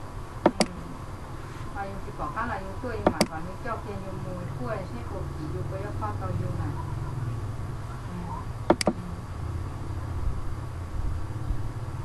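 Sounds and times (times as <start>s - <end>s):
low electrical hum: 0.0s - 12.0s
computer mouse clicks: 0.5s - 0.8s, 3.0s - 3.4s, 8.7s - 9.0s.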